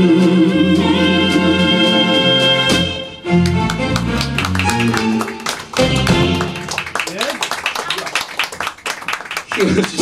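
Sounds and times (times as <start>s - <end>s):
hand claps: 3.4s - 10.0s.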